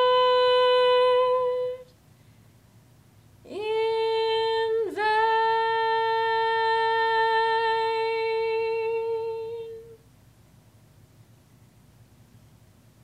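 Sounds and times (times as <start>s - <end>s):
woman singing a high note: 0.0s - 1.9s, 3.5s - 10.0s.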